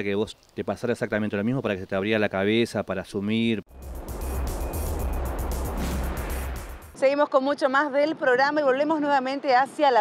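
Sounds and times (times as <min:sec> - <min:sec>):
electronic music with pulsing bass: 0:03.7 - 0:07.0.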